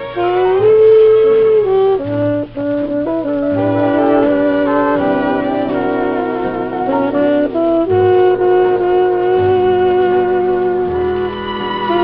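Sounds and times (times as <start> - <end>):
dance orchestra wind instruments: 0.0 - 12.0.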